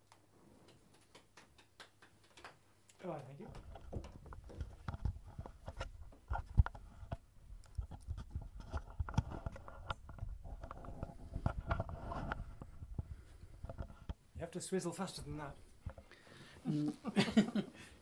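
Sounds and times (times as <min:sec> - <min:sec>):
footsteps: 0:03.1 - 0:07.1
knocks and thumps: 0:03.4 - 0:07.2.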